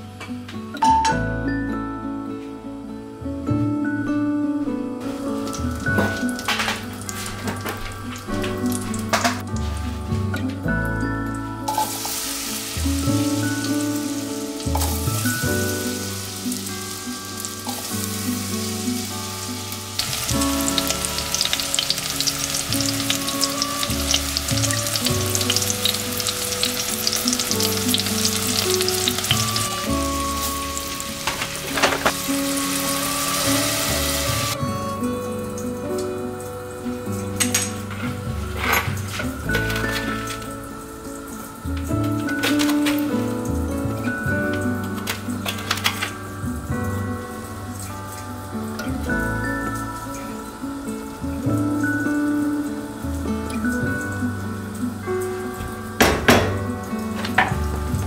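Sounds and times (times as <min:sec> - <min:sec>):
apple sizzling in hot fat: 0:11.7 - 0:35.0.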